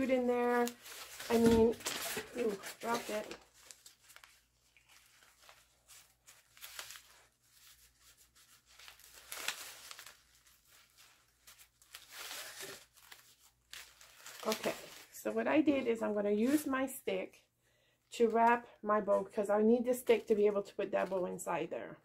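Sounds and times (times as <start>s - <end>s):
ribbon rustling: 0.0s - 16.9s.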